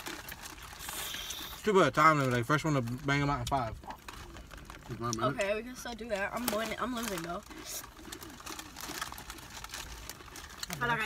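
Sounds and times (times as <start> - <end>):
plastic snack bags crinkling: 0.0 - 11.0.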